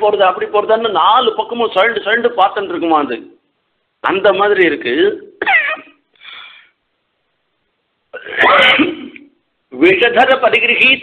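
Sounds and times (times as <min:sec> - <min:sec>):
man's short loud vocal sound: 0:08.2 - 0:09.2.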